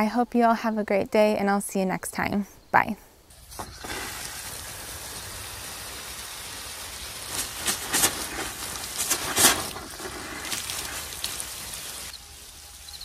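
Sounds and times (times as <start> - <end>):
hose spraying water on plants: 3.3 - 13.0.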